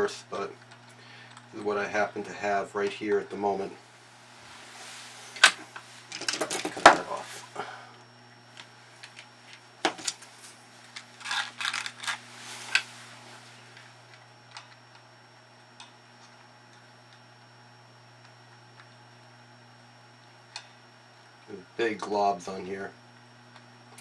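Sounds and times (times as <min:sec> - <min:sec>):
low electrical hum: 0:00.0 - 0:24.0.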